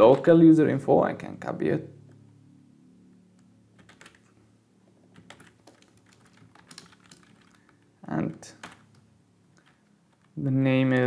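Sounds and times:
keyboard typing: 3.7s - 4.3s, 5.1s - 7.9s, 8.5s - 11.0s.

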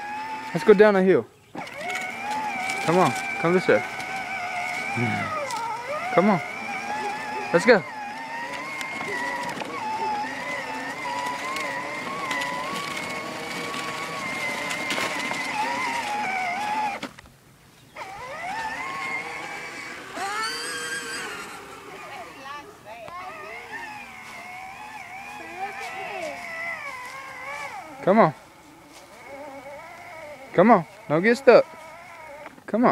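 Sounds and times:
toy electric motor whining: 0.0s - 17.2s, 17.9s - 32.9s.

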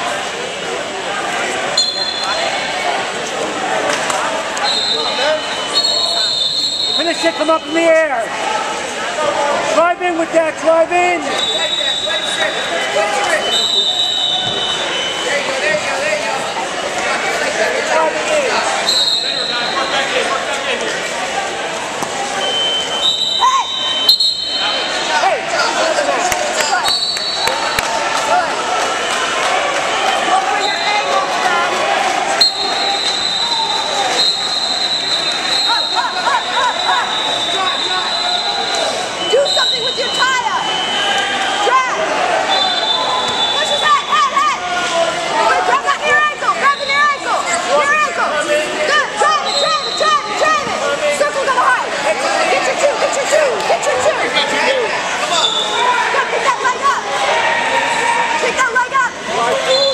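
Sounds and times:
many voices shouting and talking: 0.0s - 59.9s.

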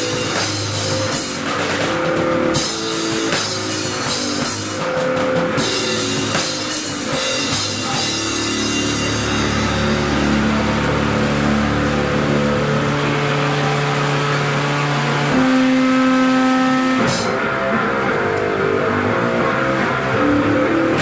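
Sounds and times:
distorted guitar and bass chords: 0.0s - 21.0s.

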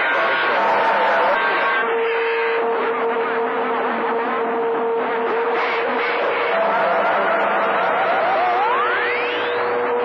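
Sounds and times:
steady low whistle: 0.0s - 10.0s.

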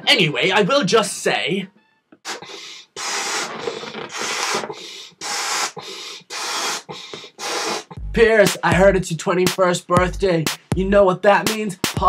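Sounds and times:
person blowing up balloon: 2.2s - 8.1s.

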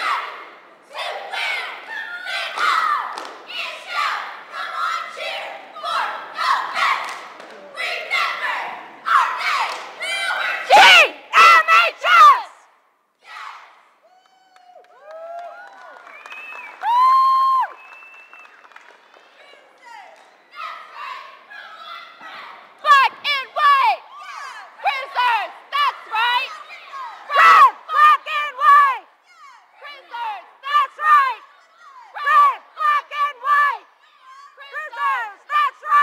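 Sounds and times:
cheerleaders shouting in unison: 0.0s - 15.6s, 19.8s - 36.0s
high-pitched yells: 7.8s - 14.8s, 20.5s - 36.0s.

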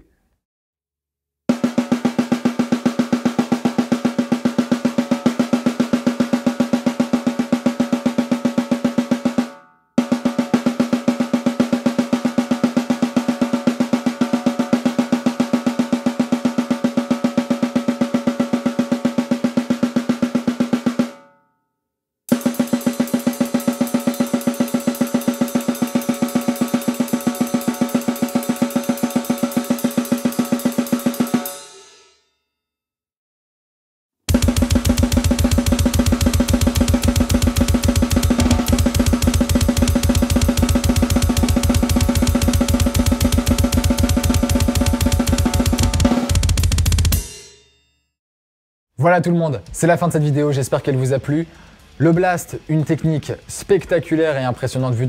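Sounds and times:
fast snare drum strokes: 1.5s - 21.2s, 22.3s - 31.6s, 34.3s - 47.4s
cymbal shimmer: 22.4s - 32.3s.

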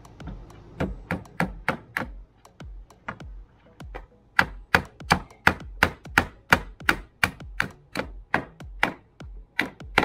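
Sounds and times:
tool knocking on wooden boards: 0.0s - 10.0s.

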